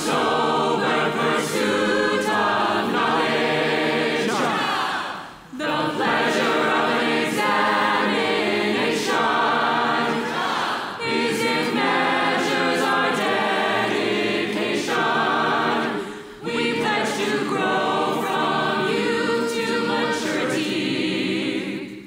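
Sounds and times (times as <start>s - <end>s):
mixed choir singing in harmony: 0.0s - 22.0s.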